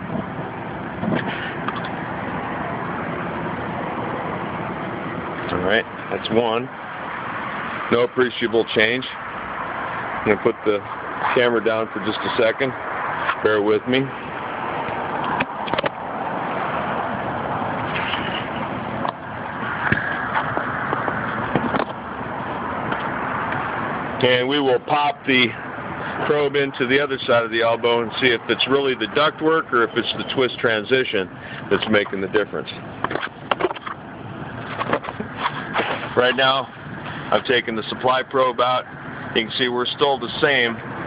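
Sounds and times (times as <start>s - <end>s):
air-conditioning unit running: 0.0s - 41.0s
handling knocks and scrapes: 34.6s - 36.5s.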